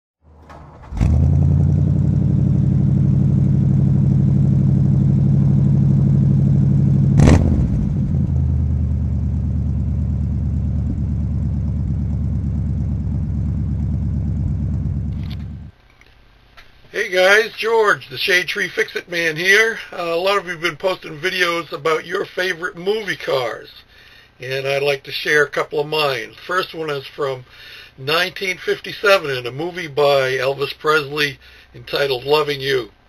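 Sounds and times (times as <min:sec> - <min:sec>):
sharp engine crack: 0:00.3 - 0:04.8, 0:07.0 - 0:11.3, 0:13.0 - 0:15.7
engine running at fast idle: 0:00.9 - 0:15.7.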